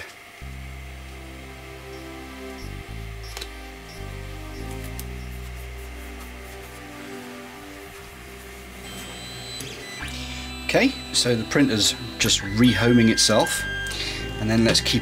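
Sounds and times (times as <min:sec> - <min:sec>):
background music with low bass: 0:00.4 - 0:15.0.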